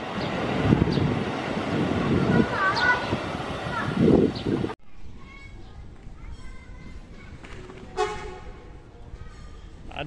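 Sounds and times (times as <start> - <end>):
train horn toot: 8.0 - 8.6.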